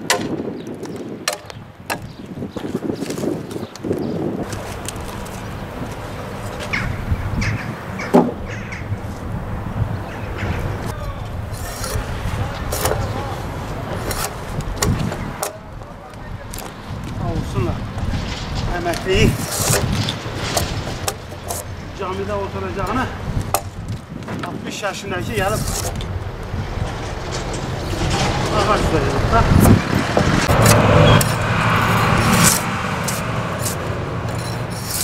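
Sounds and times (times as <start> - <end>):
blade scraping bark: 10.2 - 15.6, 18.2 - 23.7, 25.2 - 26.1, 27.1 - 35.0
man's voice: 10.9 - 11.4, 28.4 - 29.7.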